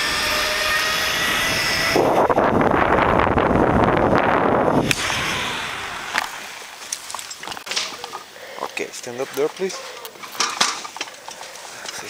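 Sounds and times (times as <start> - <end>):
rustling handling noise: 6.6 - 12.0.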